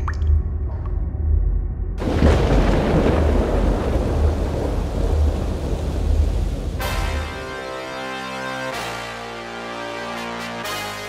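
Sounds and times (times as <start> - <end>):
water drops plopping: 0.0 - 1.0
deep thunder-like rumble: 0.2 - 6.8
heavy rain: 2.0 - 11.0.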